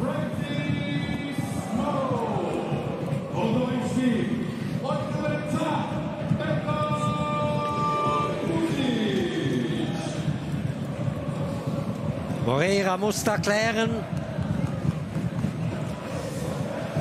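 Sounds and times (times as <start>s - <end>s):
crowd singing and chanting: 0.0s - 17.0s
drumbeats: 0.0s - 17.0s.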